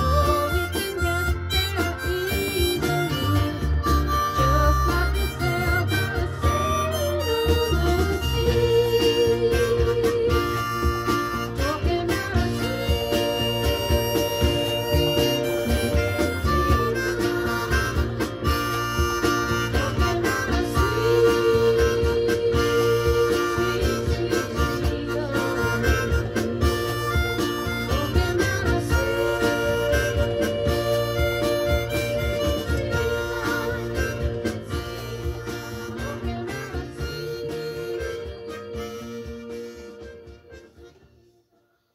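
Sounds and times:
backing track with steady beat: 0:00.0 - 0:41.3
harmonica holding bent notes: 0:00.0 - 0:41.5.

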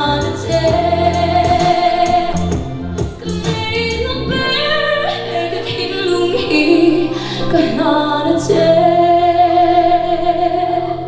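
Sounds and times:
musical accompaniment: 0:00.0 - 0:11.0
woman singing: 0:00.0 - 0:11.0.

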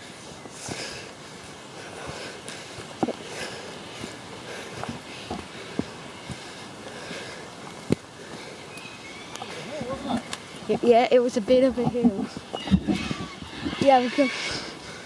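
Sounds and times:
footsteps on trail: 0:00.0 - 0:15.0.

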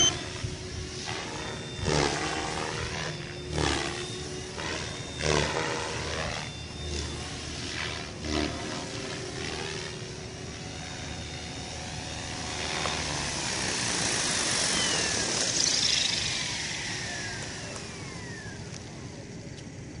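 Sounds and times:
rc helicopter rotor and motor whine: 0:00.0 - 0:20.0.

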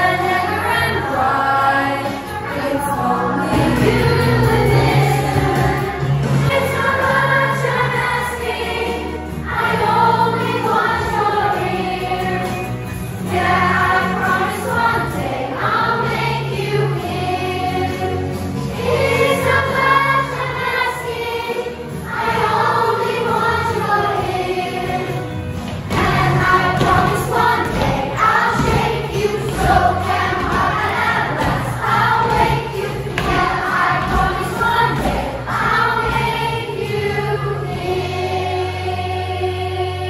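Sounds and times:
children singing in unison: 0:00.0 - 0:40.0.

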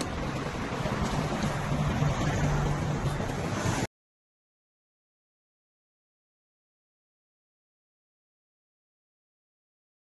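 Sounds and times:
bus diesel engines idling: 0:00.0 - 0:03.6
wind noise on microphone: 0:00.0 - 0:03.9.

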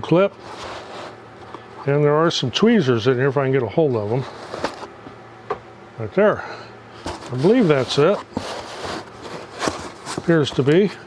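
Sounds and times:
cardboard box rustling and scraping: 0:00.4 - 0:01.2, 0:04.1 - 0:05.0, 0:07.0 - 0:11.0.

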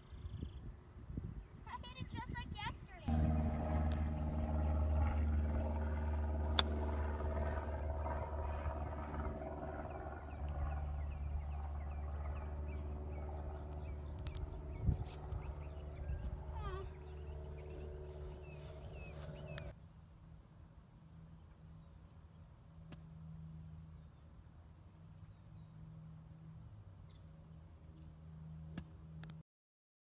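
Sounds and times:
birds chirping: 0:09.6 - 0:19.7
golf cart running: 0:18.4 - 0:19.7.

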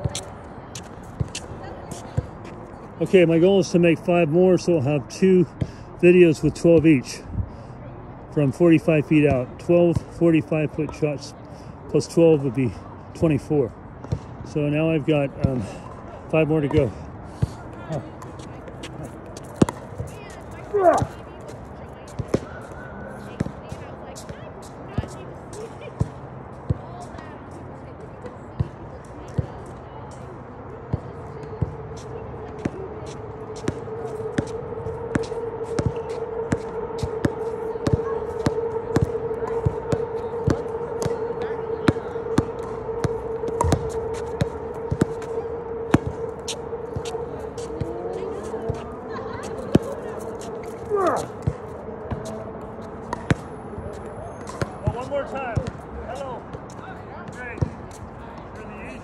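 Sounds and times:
basketball bouncing on asphalt: 0:19.4 - 0:21.2
steady hum: 0:30.4 - 0:55.2.

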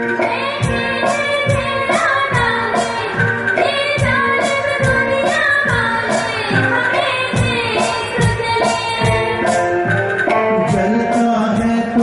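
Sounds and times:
drums: 0:00.0 - 0:12.0
keyboard: 0:00.0 - 0:12.0
tabla: 0:00.0 - 0:12.0
person singing: 0:10.4 - 0:12.0.

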